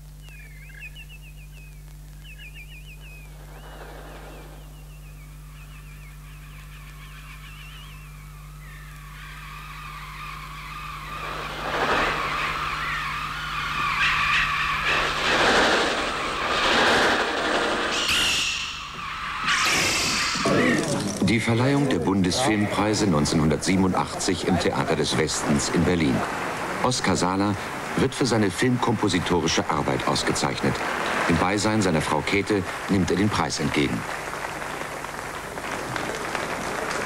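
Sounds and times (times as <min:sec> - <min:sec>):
chirps and flutter: 0:00.0 - 0:21.8
electronic bird chirps: 0:00.2 - 0:20.6.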